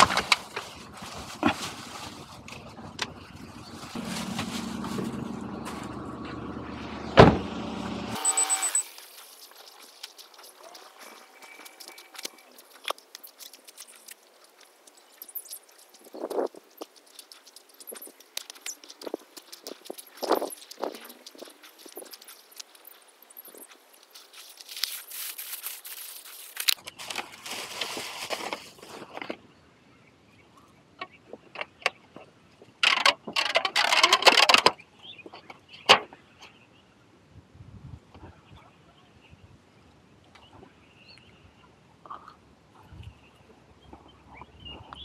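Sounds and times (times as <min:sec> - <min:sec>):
rapid beeps: 0:08.2 - 0:09.0
footsteps on rough stone: 0:08.8 - 0:29.3.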